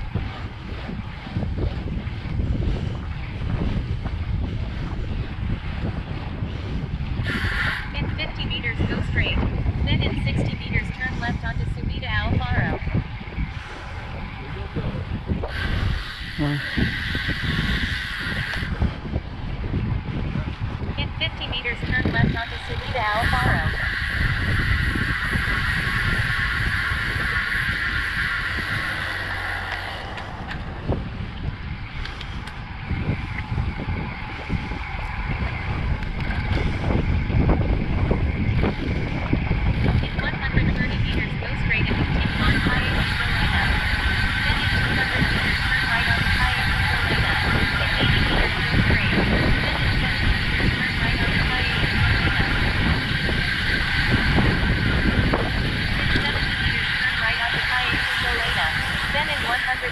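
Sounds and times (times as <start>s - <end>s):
road noise rumble: 0.0s - 59.9s
wind buffeting microphone: 0.0s - 59.9s
high steady whir: 21.0s - 59.9s.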